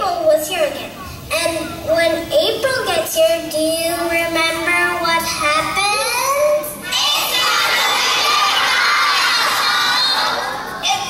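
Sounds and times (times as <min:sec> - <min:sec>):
children shouting and cheering: 0:05.7 - 0:11.0.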